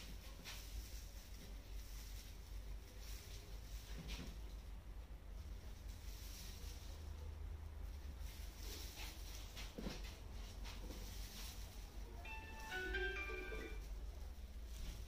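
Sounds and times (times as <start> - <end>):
brush strokes through hair: 0.0 - 4.5, 5.5 - 15.0
low steady hum: 0.0 - 15.0.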